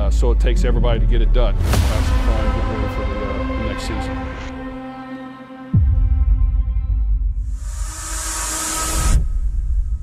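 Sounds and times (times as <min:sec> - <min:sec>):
deep bass rumble: 0:00.0 - 0:04.6.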